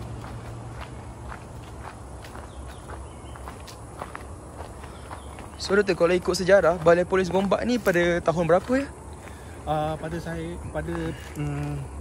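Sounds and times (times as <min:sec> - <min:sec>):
footsteps crunching dry leaves: 0:00.0 - 0:12.0.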